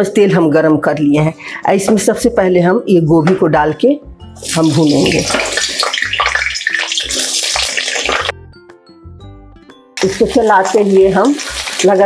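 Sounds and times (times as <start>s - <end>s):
vegetables sizzling in hot oil: 4.4s - 8.3s, 10.0s - 12.0s.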